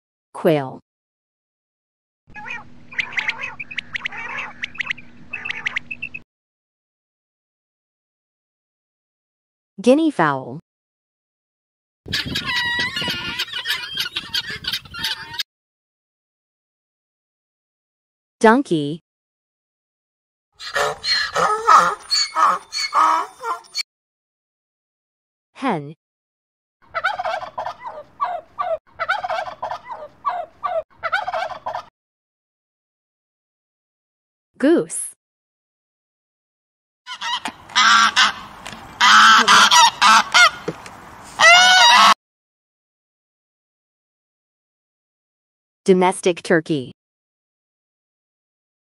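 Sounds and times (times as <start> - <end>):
geese honking: 2.4 - 5.9, 12.1 - 15.4, 20.6 - 23.8, 26.9 - 31.8, 37.1 - 42.2
guinea fowl calling: 2.4 - 6.2, 12.1 - 15.4, 20.6 - 23.8, 26.9 - 31.9, 37.1 - 42.2.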